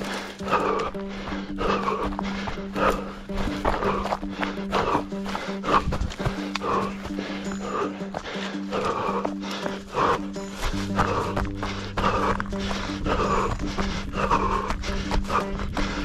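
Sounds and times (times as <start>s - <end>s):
footfalls on stony trail: 0.0s - 16.0s
hard rhythmic breathing: 0.0s - 16.0s.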